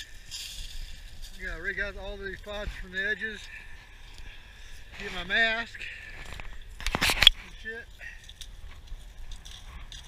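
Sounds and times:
faint short rustles and clicks: 6.1s - 7.6s.

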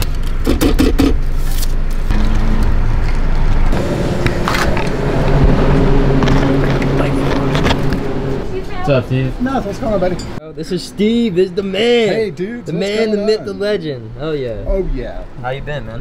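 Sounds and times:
hum of held tones: 2.1s - 8.8s
car engine idling: 2.1s - 10.4s.

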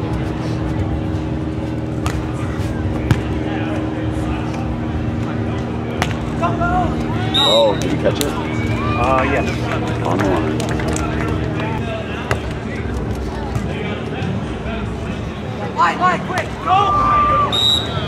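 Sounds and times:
steady low hum: 0.0s - 18.0s
people shouting: 6.4s - 10.4s, 15.8s - 18.0s.

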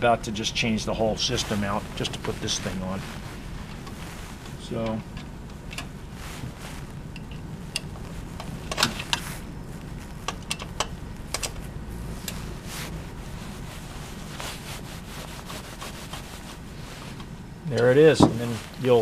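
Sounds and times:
steady low hum: 0.0s - 19.0s
light metallic clicks and rubbing: 1.2s - 19.0s.

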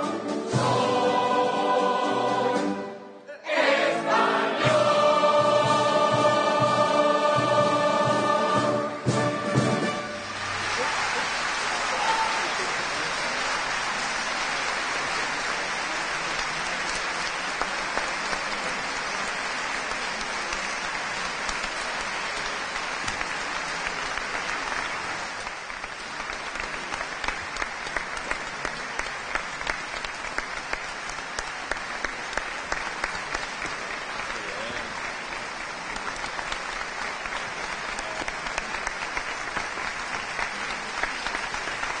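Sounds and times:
rhythmic clapping in unison: 3.6s - 42.0s
audience applauding: 4.1s - 42.0s.

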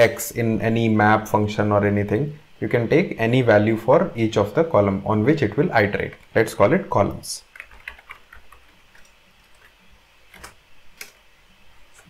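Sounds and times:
keyboard keystrokes: 7.6s - 9.7s.

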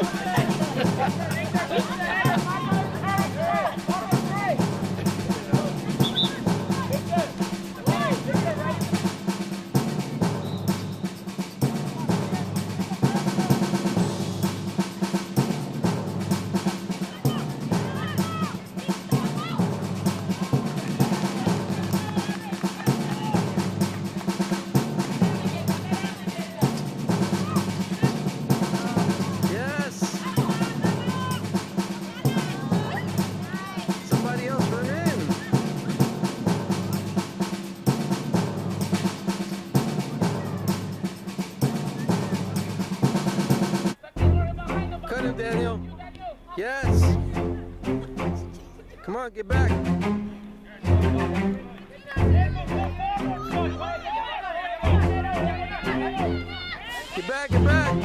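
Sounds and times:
people shouting: 0.0s - 9.4s, 11.8s - 13.9s, 16.8s - 36.2s, 39.4s - 41.0s, 50.9s - 58.0s
snare drum rolls: 0.0s - 44.0s
low drum beat: 0.0s - 45.9s, 46.8s - 48.9s, 49.5s - 50.2s, 54.9s - 56.3s, 57.1s - 58.0s.

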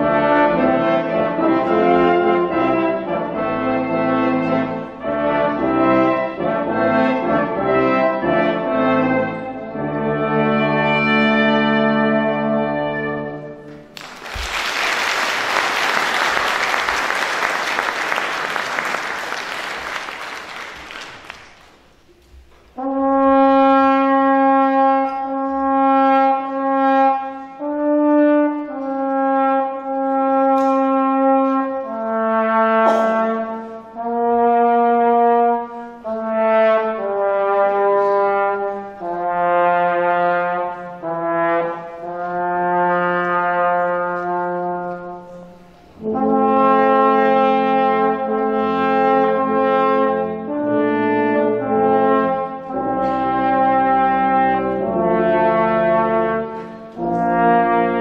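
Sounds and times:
deep tuba line: 0.0s - 21.5s, 22.8s - 58.0s
brass ensemble playing slow tune: 0.0s - 22.1s, 22.7s - 58.0s.

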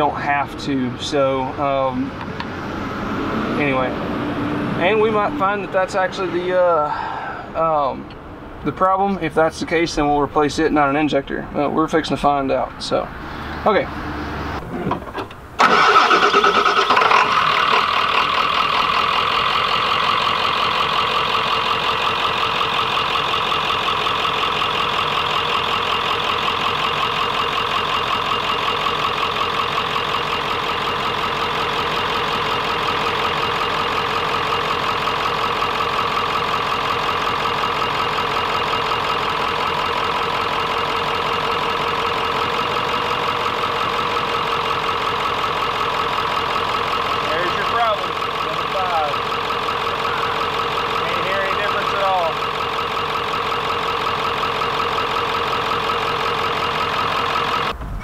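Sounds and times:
diesel engine starting and idling: 0.0s - 58.0s.

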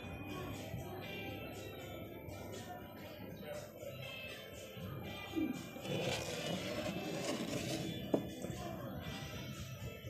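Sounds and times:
fingers rubbing on sandal: 5.8s - 8.0s.

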